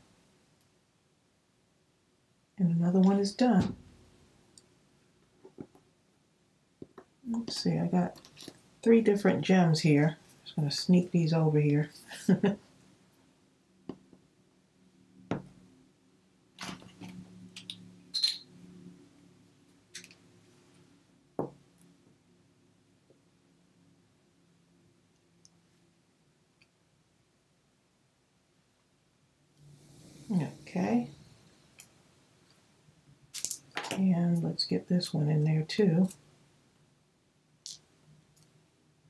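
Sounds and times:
faint steady hum: 0.0 - 39.0
light taps and clicks of gems: 37.6 - 38.6.

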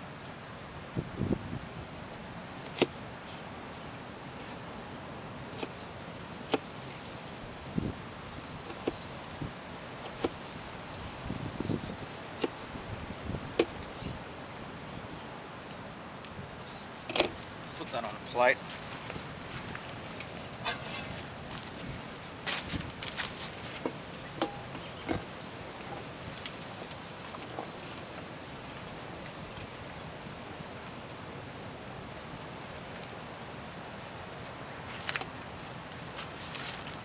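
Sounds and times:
outdoor background noise: 0.0 - 37.0.

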